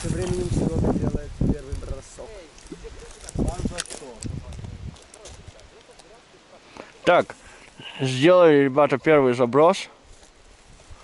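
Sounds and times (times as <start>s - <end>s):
people talking: 0.0s - 9.9s.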